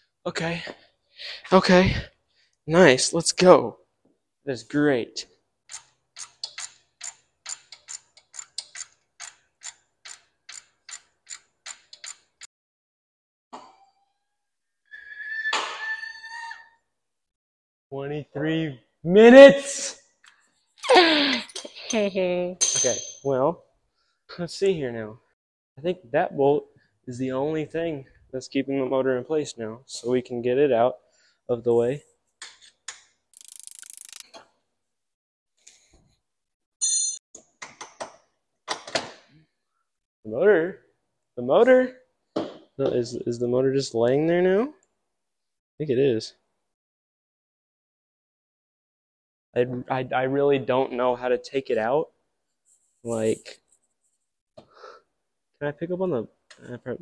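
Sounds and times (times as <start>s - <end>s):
hand ratchet clicking: 5.7s - 12.5s, 33.4s - 34.3s
ringing metal clink: 21.5s - 23.3s, 36.8s - 37.2s.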